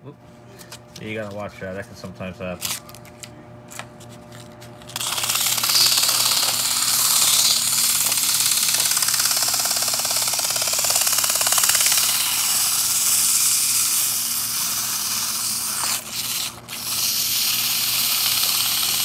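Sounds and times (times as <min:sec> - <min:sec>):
motor low hum: 0:02.9 - 0:19.0
sandpaper rasping on spinning shaft: 0:05.0 - 0:19.0.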